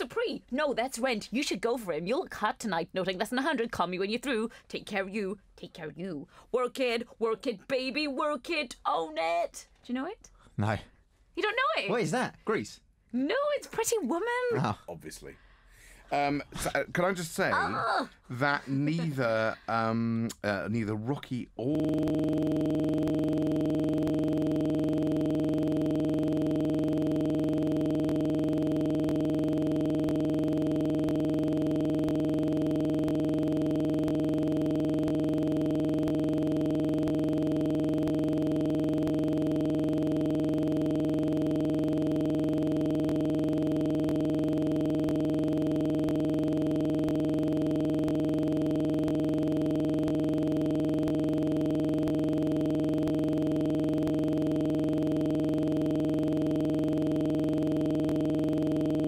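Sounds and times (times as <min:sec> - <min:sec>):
continuous electronic buzz tone: 0:15.6 - 0:20.2, 0:21.0 - 0:59.0.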